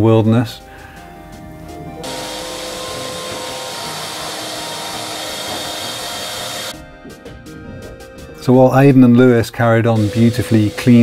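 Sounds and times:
shop vacuum running: 2.0 - 6.8, 10.0 - 11.0.

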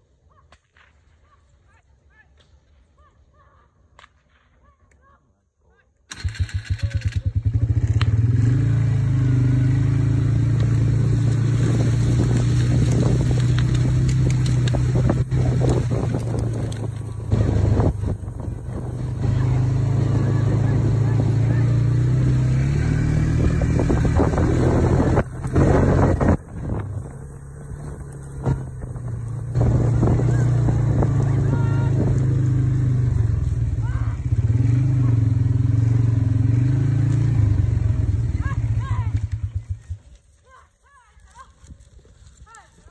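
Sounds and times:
vehicle engine running: 6.1 - 40.4.

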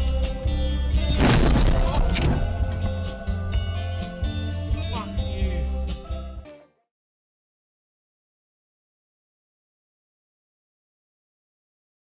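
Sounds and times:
background music: 0.0 - 6.8
car crash impact: 1.0 - 3.0.

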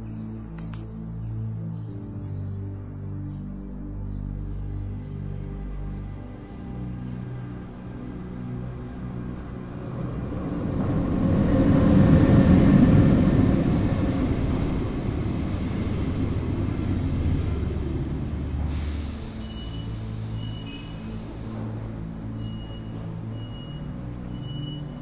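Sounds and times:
passenger train passing: 5.6 - 25.0.

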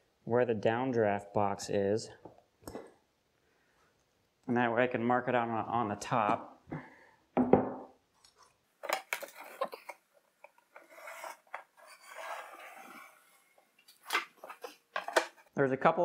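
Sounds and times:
knock on wood: 7.4 - 7.9
board scraping: 10.6 - 15.5
pencil scratching on plywood: 10.7 - 13.5.

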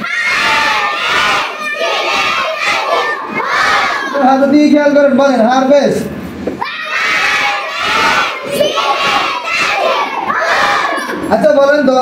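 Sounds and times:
children chanting in unison: 0.0 - 4.2, 6.6 - 11.3.

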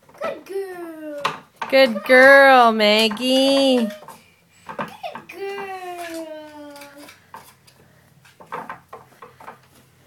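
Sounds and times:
dog claws on wooden ladder: 2.9 - 10.0.

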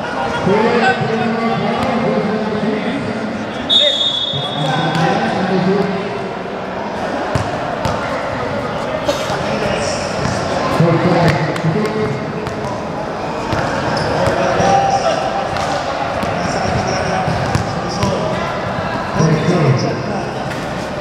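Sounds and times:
chatter echoing in hall: 0.0 - 21.0
basketball bouncing on court: 7.3 - 8.1, 11.2 - 12.8, 15.5 - 18.2.

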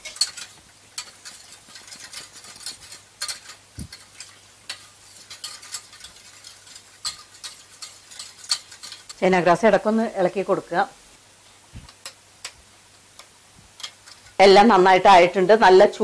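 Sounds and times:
metal spoon scraping saucepan: 0.0 - 9.7.

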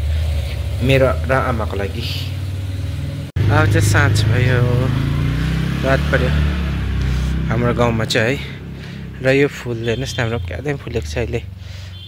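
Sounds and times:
steady low rumble: 0.0 - 11.8
person speaking: 0.8 - 2.4, 3.4 - 11.5.

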